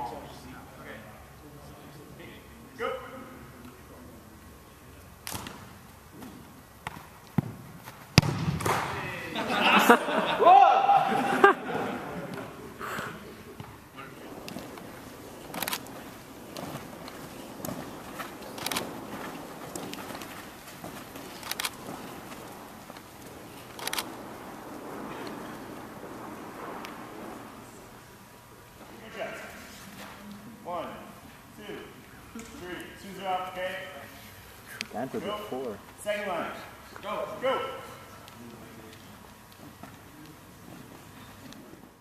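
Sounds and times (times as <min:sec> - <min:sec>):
soccer ball thumping on turf: 0:06.8 - 0:09.0
voices shouting: 0:10.0 - 0:11.5.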